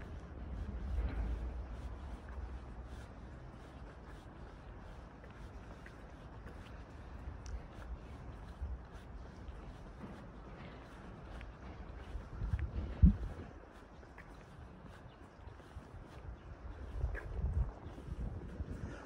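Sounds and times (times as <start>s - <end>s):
wind rumbling on microphone: 0.0s - 19.0s
faint ticks: 7.4s - 7.7s.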